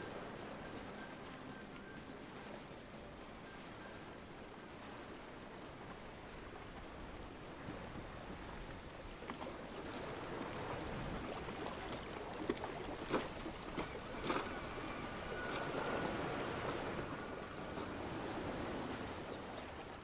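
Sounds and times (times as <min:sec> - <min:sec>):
waves lapping around ice: 0:00.0 - 0:20.0.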